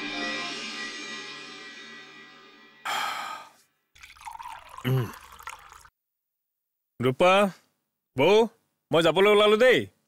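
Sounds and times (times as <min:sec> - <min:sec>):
water pouring into a glass: 0:04.0 - 0:05.9.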